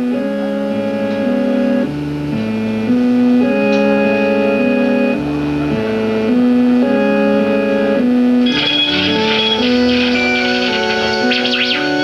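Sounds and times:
electric organ chords: 0.0s - 12.0s.

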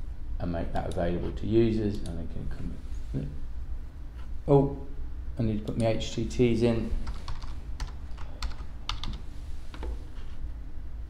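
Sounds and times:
computer keyboard typing: 7.0s - 9.2s.

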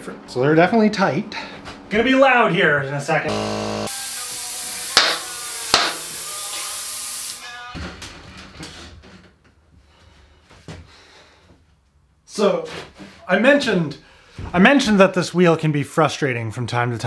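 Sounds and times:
compressed air hissing: 3.9s - 7.6s.

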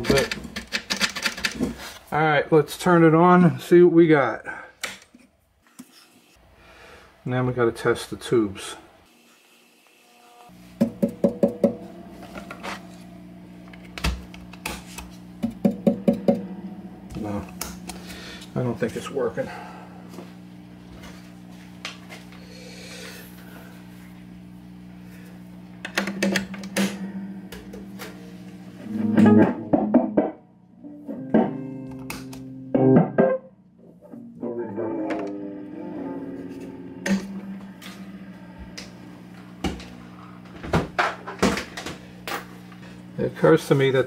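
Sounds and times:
amp mains hum: 0.0s - 44.0s
electric guitar notes and chords: 15.6s - 18.4s, 25.6s - 40.4s.

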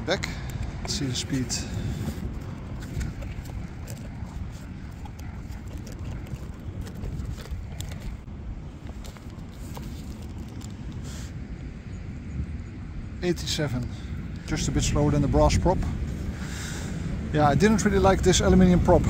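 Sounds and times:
low wind rumble on microphone: 0.0s - 19.0s.

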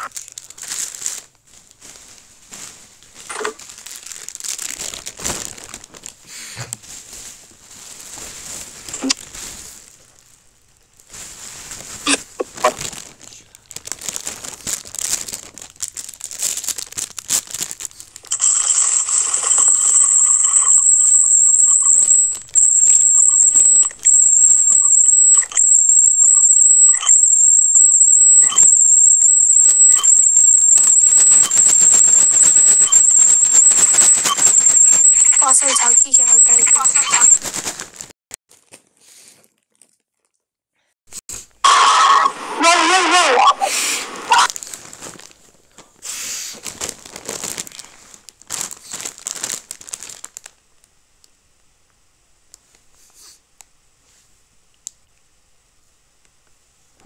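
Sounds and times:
high-pitched whine: 18.3s - 37.4s.

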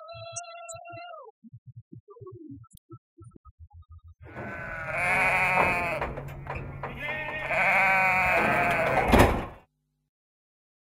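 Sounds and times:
sheep bleating: 4.3s - 9.6s.

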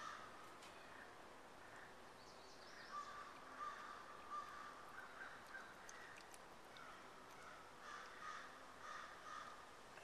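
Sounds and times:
faint bird calls: 0.0s - 10.0s.

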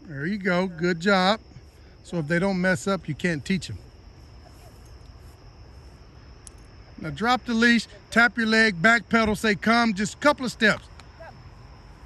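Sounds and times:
high-pitched insect chorus: 0.0s - 12.0s.

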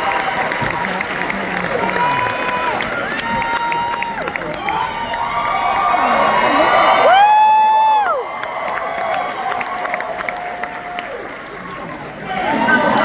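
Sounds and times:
audience cheering and applauding: 0.0s - 13.0s
loud high whoop: 5.0s - 11.2s.

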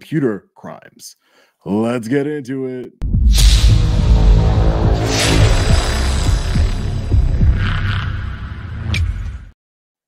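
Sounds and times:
short whoosh: 3.0s - 8.1s
low droning bass: 3.0s - 8.8s
deep throbbing pulses: 3.0s - 8.9s.

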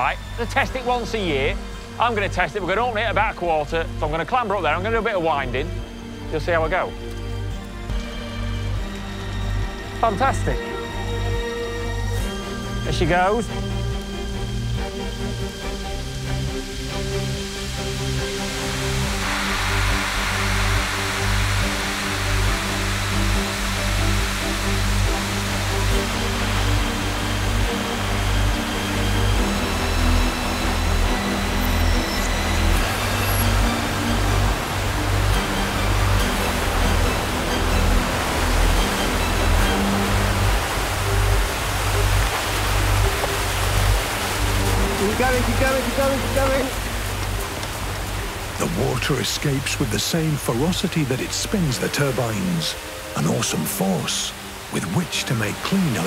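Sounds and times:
music with pulsing low beat: 0.0s - 48.8s
water rushing from valve: 13.4s - 53.2s.

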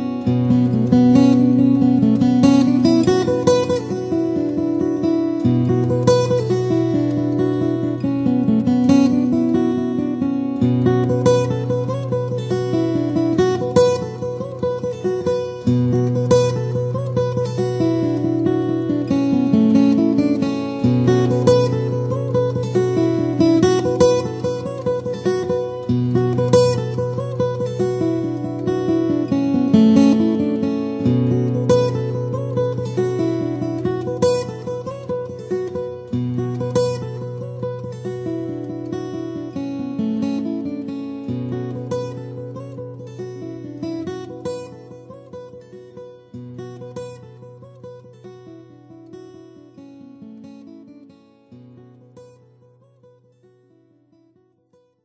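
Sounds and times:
solo guitar picking: 0.0s - 54.9s.

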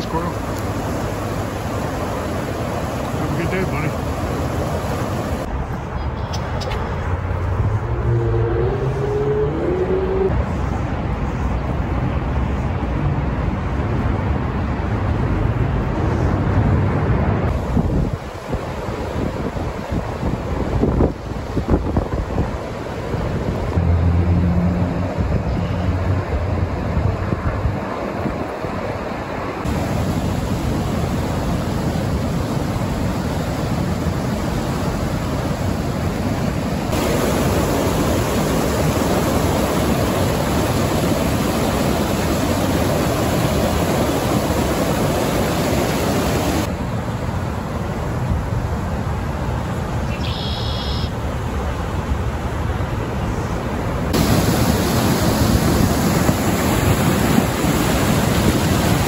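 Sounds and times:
water roaring over weir: 0.0s - 5.7s, 6.8s - 50.1s, 51.1s - 59.0s
wind buffeting microphone: 15.4s - 23.9s.

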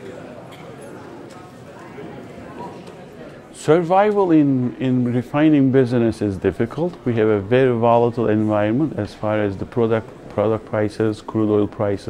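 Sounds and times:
murmur of many voices: 0.0s - 12.0s.

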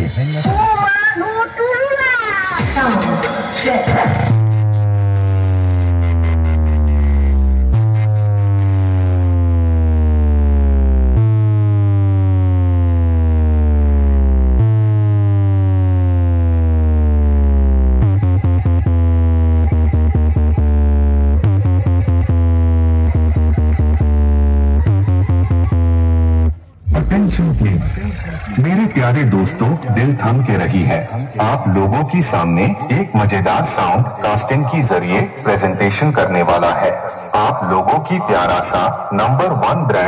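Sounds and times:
electronic bass music: 2.6s - 40.0s.

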